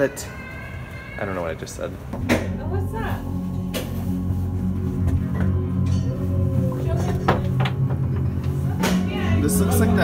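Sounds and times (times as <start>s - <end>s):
low rumbling drone: 2.4s - 10.0s.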